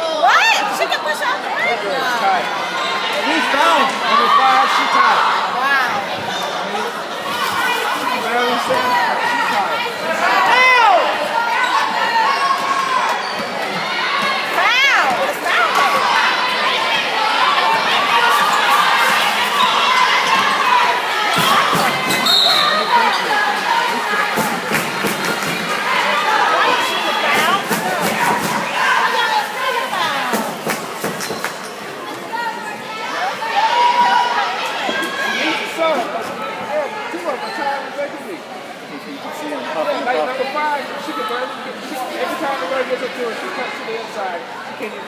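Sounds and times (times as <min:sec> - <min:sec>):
crowd murmur and shouts: 0:00.0 - 0:45.0
sneakers squeaking: 0:11.5 - 0:14.3, 0:21.2 - 0:32.8.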